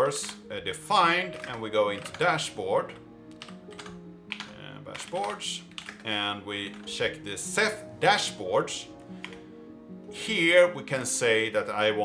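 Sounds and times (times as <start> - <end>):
typing on computer keyboard: 0.0 - 0.5, 1.3 - 7.2.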